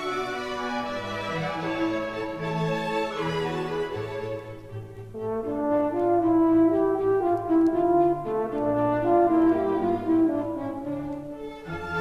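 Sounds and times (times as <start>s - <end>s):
light orchestral accompaniment: 0.0s - 12.0s.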